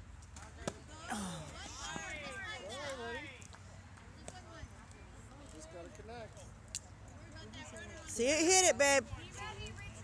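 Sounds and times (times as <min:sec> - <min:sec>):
faint indistinct chatter: 0:00.3 - 0:10.0.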